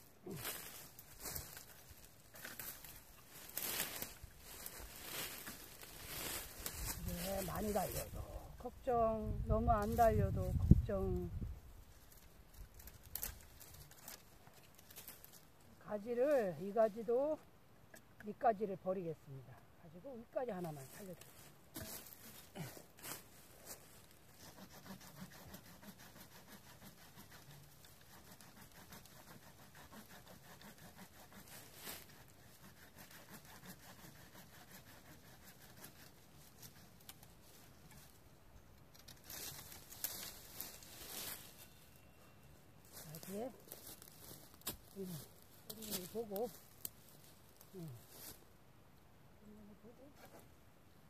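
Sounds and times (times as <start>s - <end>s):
dry branches cracking and snapping: 0.4s - 7.3s, 12.0s - 15.5s.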